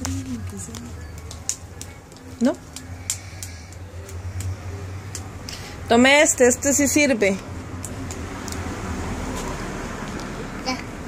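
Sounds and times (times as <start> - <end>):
small objects clicking and tapping: 0.0 - 5.6.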